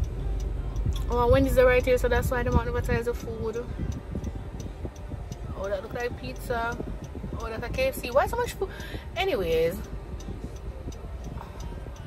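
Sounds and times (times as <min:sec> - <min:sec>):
low car rumble: 0:00.0 - 0:12.0
turn signal ticking: 0:00.0 - 0:12.0.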